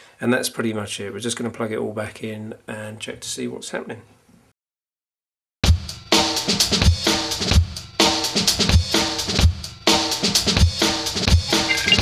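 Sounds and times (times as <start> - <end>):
drum kit beat with chords: 5.7 - 12.0.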